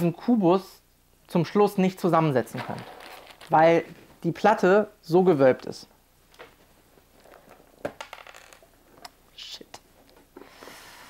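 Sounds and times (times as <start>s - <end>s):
plastic bricks clicking and rattling: 2.6s - 3.6s.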